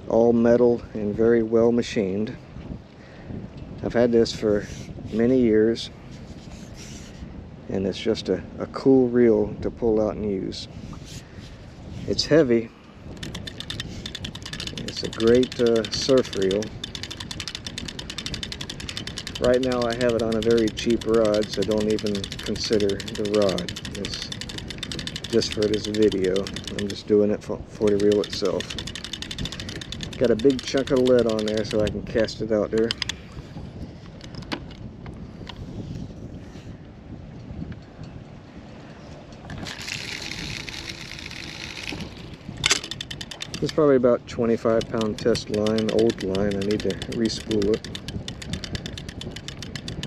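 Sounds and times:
wind rumbling on microphone: 0:00.0 - 0:50.0
fishing reel ratchet clicking: 0:13.2 - 0:33.2, 0:39.5 - 0:50.0.

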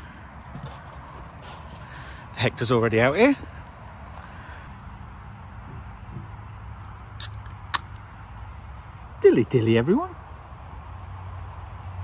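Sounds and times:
beer can ring pull cracking: 0:07.2 - 0:08.0.

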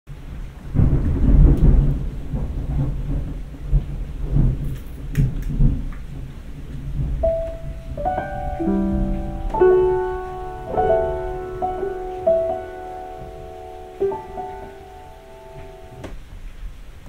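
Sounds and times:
rain: 0:00.1 - 0:17.0
thunder rumbling: 0:00.1 - 0:17.0
held piano note: 0:07.2 - 0:16.2.

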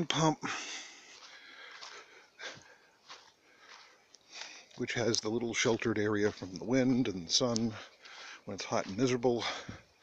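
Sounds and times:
faint breathing: 0:00.4 - 0:04.8, 0:07.7 - 0:08.5.

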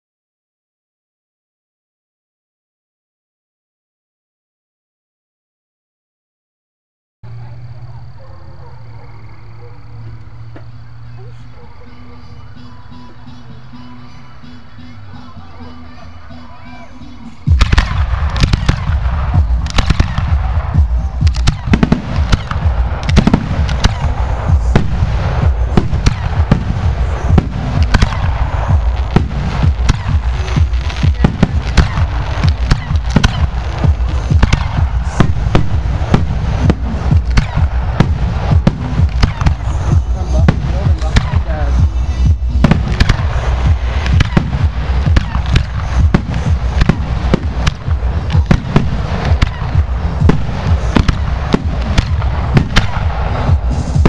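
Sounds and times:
fireworks bursting: 0:10.0 - 0:54.0
steady low rumble: 0:17.4 - 0:54.0.

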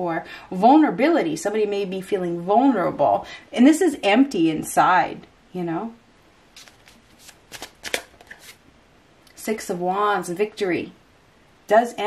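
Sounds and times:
cards being handled: 0:06.6 - 0:08.6.

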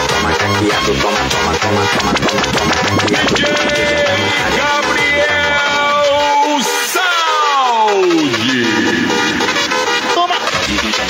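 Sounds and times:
electronic dance music: 0:00.0 - 0:11.0
noisy wash: 0:01.8 - 0:06.1.

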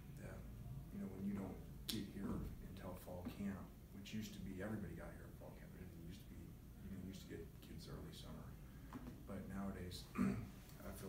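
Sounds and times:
man speaking into a microphone: 0:00.2 - 0:08.6.

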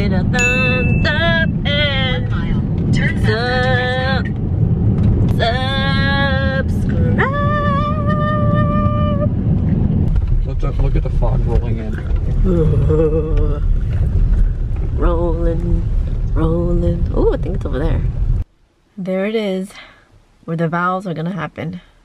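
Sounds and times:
road rumble inside car: 0:00.0 - 0:18.5.

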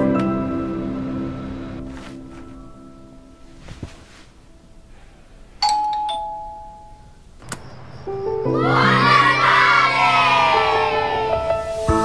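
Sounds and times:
soft background music: 0:00.0 - 0:05.0, 0:08.1 - 0:12.0
doorbell ding-dong: 0:05.6 - 0:07.2
children's voices together: 0:08.5 - 0:11.4.

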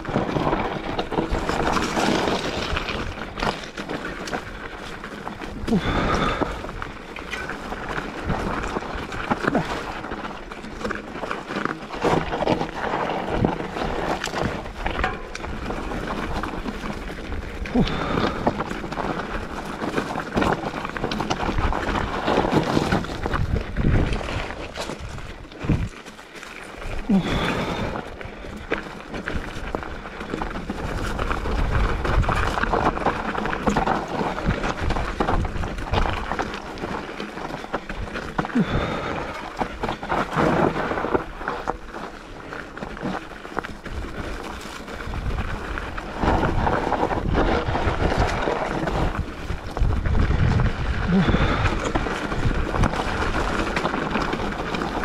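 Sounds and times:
bike clicks and rattles: 0:00.0 - 0:55.0
tyres rolling over gravel: 0:00.0 - 0:55.0
wind on microphone: 0:45.0 - 0:53.7.

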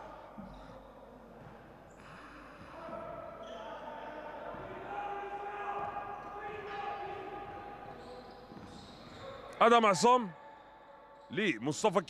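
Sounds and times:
people's voices in hall: 0:00.0 - 0:12.0.

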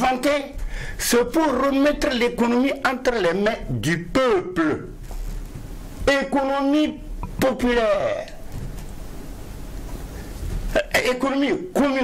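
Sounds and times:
man speaking: 0:00.0 - 0:05.0, 0:06.0 - 0:08.4, 0:10.7 - 0:12.0
studio background hum: 0:00.0 - 0:12.0.

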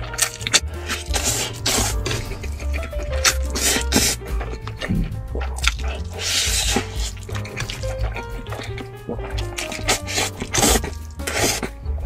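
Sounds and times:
background music with stepping melody: 0:00.0 - 0:12.0
person slurping noodles: 0:00.2 - 0:11.7.

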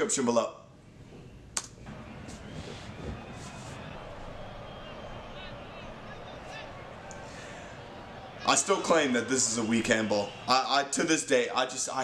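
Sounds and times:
faint crowd noise of football broadcast: 0:01.8 - 0:12.0.

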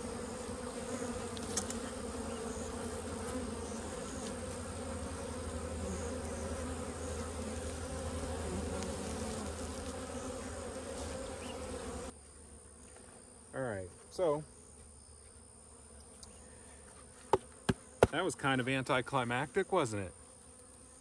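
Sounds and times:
honey bees buzzing: 0:00.0 - 0:21.0.

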